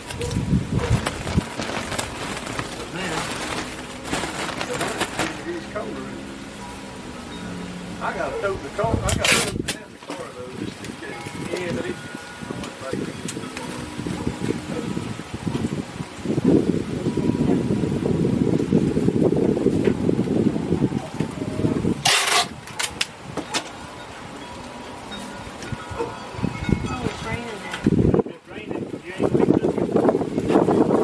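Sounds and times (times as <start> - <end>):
low rumbling: 0.0 - 22.0
people talking indistinctly: 7.4 - 15.2.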